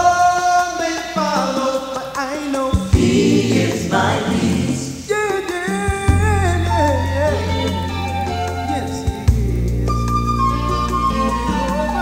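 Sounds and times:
gospel choir singing: 0.0 - 5.9
low bass notes: 6.1 - 8.4, 9.2 - 12.0.

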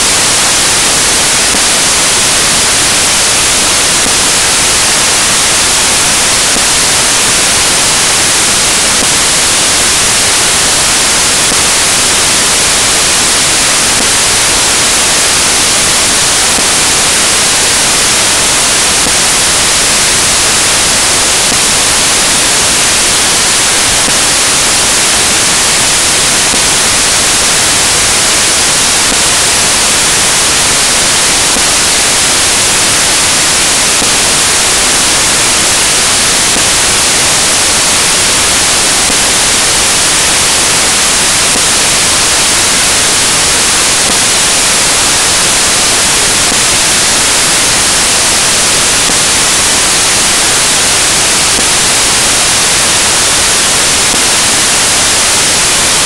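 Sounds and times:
white noise hiss: 0.0 - 56.0.

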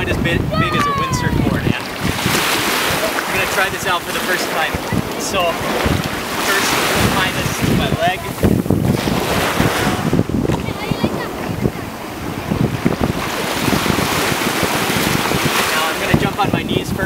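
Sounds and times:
small waves washing: 0.0 - 17.0
wind buffeting microphone: 0.0 - 17.0.

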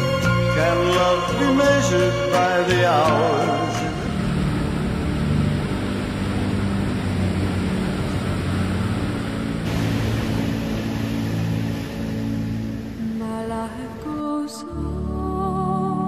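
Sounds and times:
ocean surf rushing: 0.0 - 14.7
soft background music: 0.0 - 16.0.

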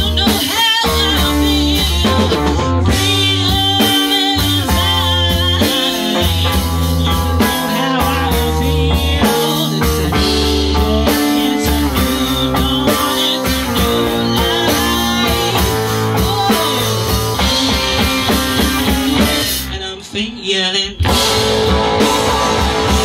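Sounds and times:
live rock band playing: 0.0 - 23.0
person singing: 0.0 - 23.0.

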